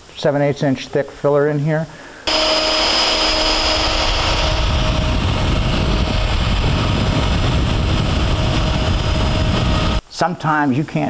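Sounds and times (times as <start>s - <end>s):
router whining: 2.3s - 10.0s.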